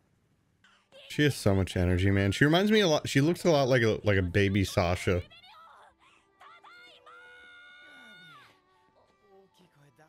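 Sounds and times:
quiet background music: 0:01.0 - 0:10.0
girl shouting: 0:05.2 - 0:08.6.

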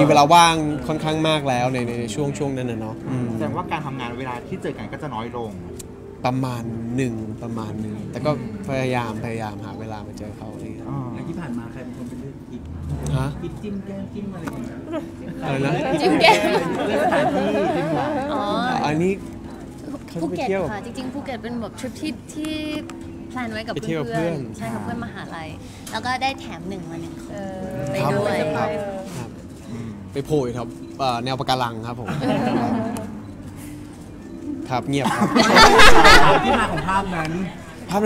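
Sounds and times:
faint murmur of people: 0:00.0 - 0:38.0
people talking over each other: 0:14.4 - 0:29.4, 0:35.2 - 0:38.0.

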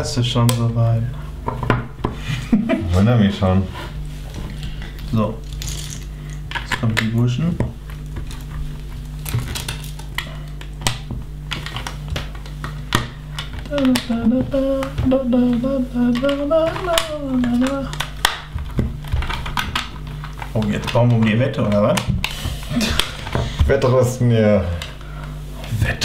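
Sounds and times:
plastic bricks clicking and rattling: 0:05.4 - 0:07.1
man humming: 0:13.6 - 0:18.1.

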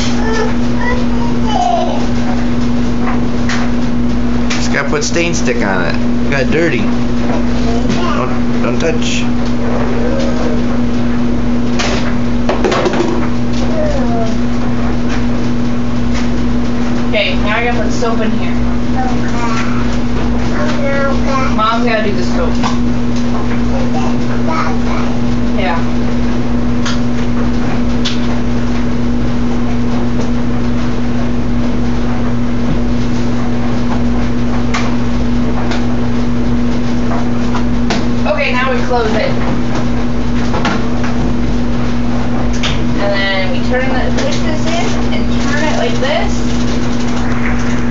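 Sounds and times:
steady low hum: 0:00.0 - 0:47.9
washing machine filling with water: 0:00.0 - 0:47.9.

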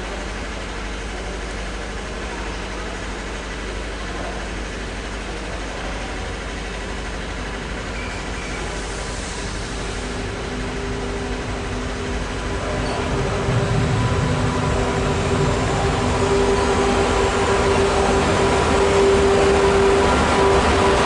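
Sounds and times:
distant train rumble: 0:00.0 - 0:21.0
low hum: 0:10.2 - 0:21.0.

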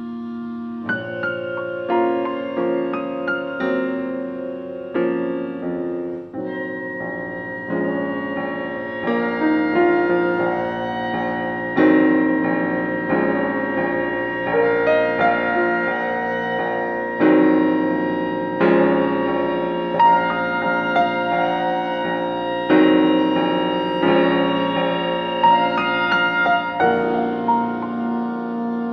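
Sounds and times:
slow piano chords: 0:00.0 - 0:28.9.

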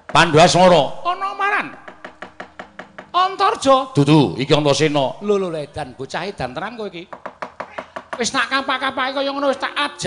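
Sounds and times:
man talking: 0:00.2 - 0:01.8, 0:03.2 - 0:07.1, 0:08.2 - 0:10.0
rapid wooden and metal knocking: 0:01.8 - 0:03.2, 0:07.1 - 0:09.6.

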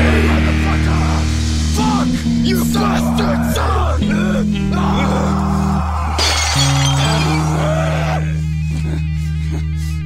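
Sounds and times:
bass guitar chords: 0:00.0 - 0:09.1
distorted electric guitars: 0:00.0 - 0:09.8.

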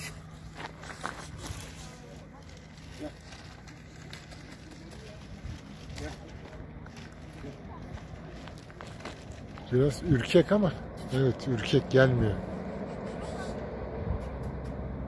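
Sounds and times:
footsteps on gravel: 0:00.0 - 0:10.6
faint voices: 0:00.0 - 0:13.9.

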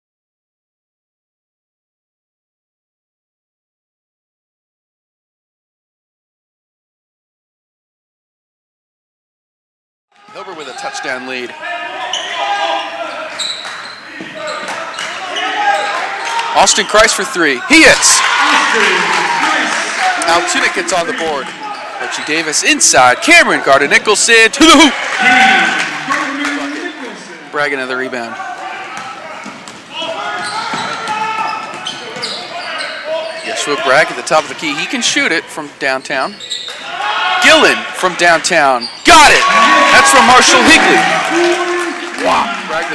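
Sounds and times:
voices in a gym: 0:10.2 - 0:42.9
sneaker squeak: 0:12.0 - 0:16.6, 0:21.2 - 0:22.5, 0:29.0 - 0:33.7, 0:36.0 - 0:36.9, 0:38.8 - 0:39.1.

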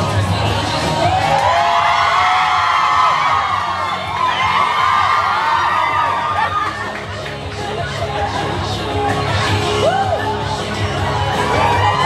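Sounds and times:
background music: 0:00.0 - 0:12.0
crowd cheering and screaming: 0:00.6 - 0:12.0.

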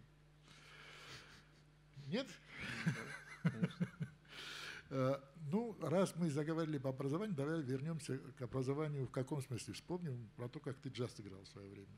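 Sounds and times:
low electrical hum: 0:00.0 - 0:11.9
man chuckling: 0:02.6 - 0:04.2
man speaking: 0:04.9 - 0:11.9.

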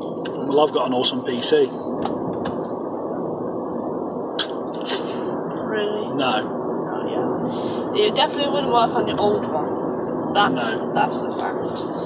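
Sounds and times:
car road and tyre noise: 0:00.0 - 0:12.0.

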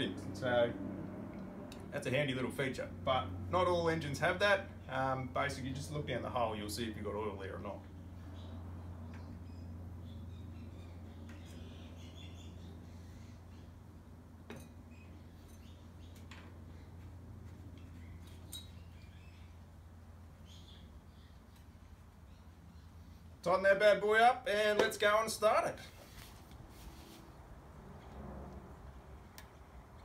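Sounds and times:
steady low hum: 0:00.0 - 0:24.0
faint bird chirps: 0:20.4 - 0:23.2.

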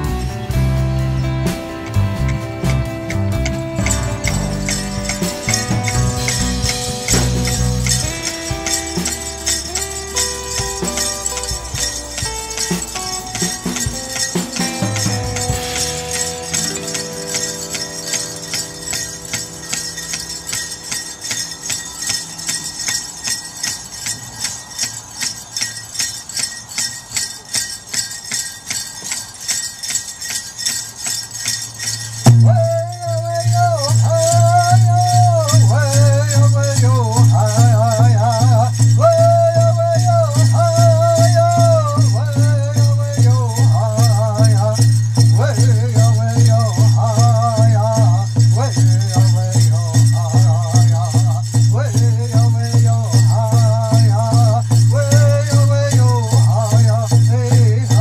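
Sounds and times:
loud steady drumbeat: 0:00.0 - 0:22.2, 0:32.2 - 0:58.0
high wavering singing: 0:00.0 - 0:58.0
powwow music with jingling bells: 0:00.0 - 0:58.0.

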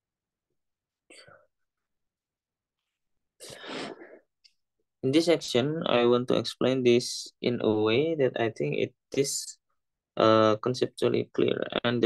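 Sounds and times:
person breathing near microphone: 0:03.4 - 0:04.3.

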